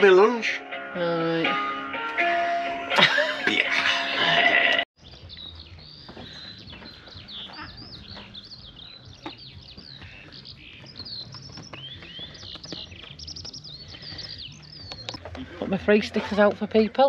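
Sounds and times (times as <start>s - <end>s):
birds chirping: 0.0s - 17.0s.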